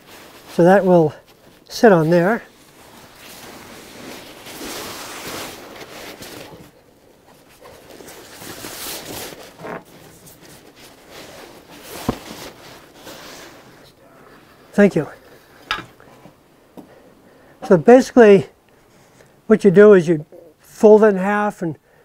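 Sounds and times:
nylon skin rustling and crinkling: 0:00.0 - 0:16.4.

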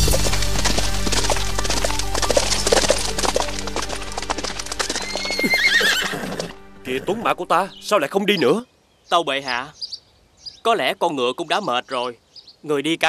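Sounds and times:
horse hooves clip-clopping: 0:00.0 - 0:07.3
background music: 0:00.0 - 0:08.6
horse whinnying: 0:04.2 - 0:07.3.

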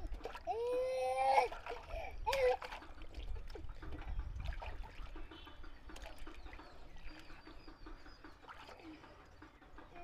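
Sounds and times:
water splashing in a tub: 0:00.0 - 0:09.6.

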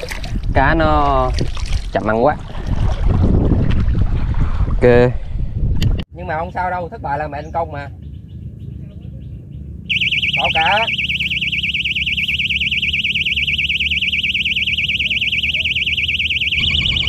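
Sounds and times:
bite alarm warbling tone: 0:09.9 - 0:17.0.

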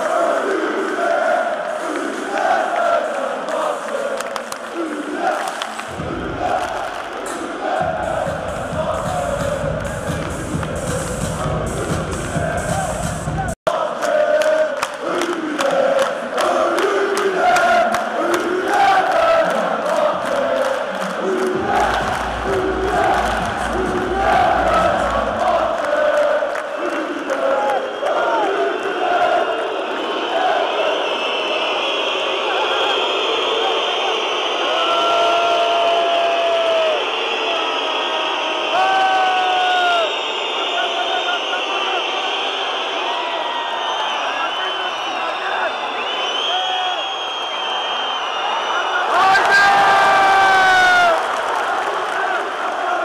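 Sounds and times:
crowd chanting in unison: 0:00.0 - 0:53.0
crowd whistling and shouting: 0:00.0 - 0:53.0
clapping: 0:02.3 - 0:06.0, 0:13.9 - 0:28.2, 0:50.7 - 0:52.9.

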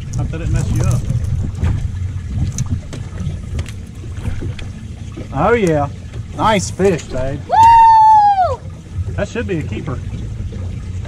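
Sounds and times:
water noise around boat: 0:00.0 - 0:11.0
wind buffeting microphone: 0:00.0 - 0:11.0.

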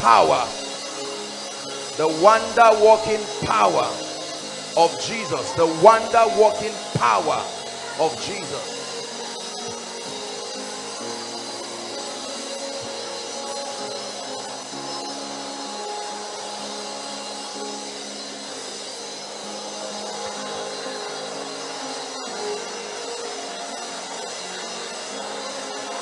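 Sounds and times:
soft music of held chords: 0:00.0 - 0:26.0
steady hiss: 0:00.0 - 0:26.0.

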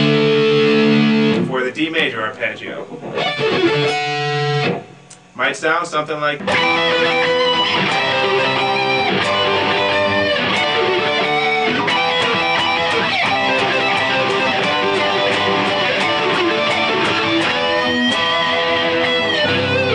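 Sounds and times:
electric guitar sweep-picked arpeggios: 0:00.0 - 0:01.5, 0:03.0 - 0:05.1, 0:06.4 - 0:19.9
electric guitar power chords: 0:00.0 - 0:05.4, 0:06.4 - 0:19.9.

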